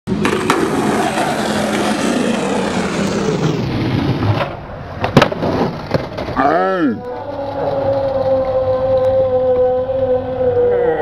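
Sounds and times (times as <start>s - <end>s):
skateboard clattering on ramp: 0.1s - 2.5s, 3.9s - 6.4s
skateboard wheels rolling: 0.1s - 6.5s.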